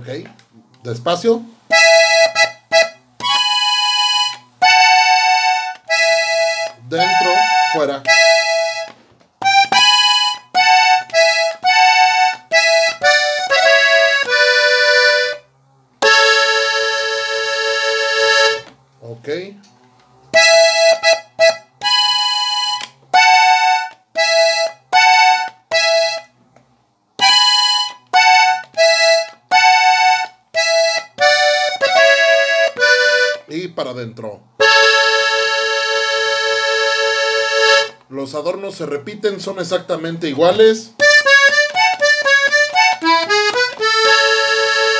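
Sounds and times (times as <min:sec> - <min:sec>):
button accordion chords: 0:01.1 - 0:18.8, 0:20.3 - 0:26.4, 0:27.2 - 0:33.6, 0:34.6 - 0:38.1, 0:39.3 - 0:44.9.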